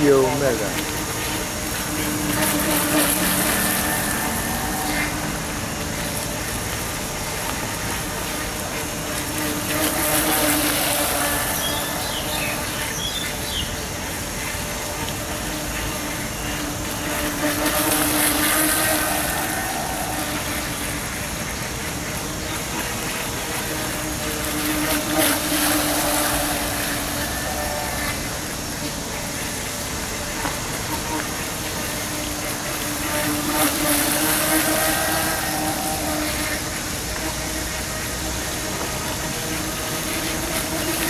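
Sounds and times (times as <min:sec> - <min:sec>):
model speedboat motor hum: 0:00.0 - 0:41.0
water spray hissing: 0:00.0 - 0:41.0.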